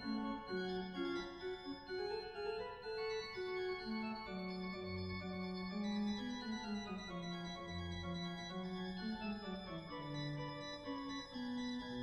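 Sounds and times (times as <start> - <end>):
chamber organ playing: 0.0 - 12.0.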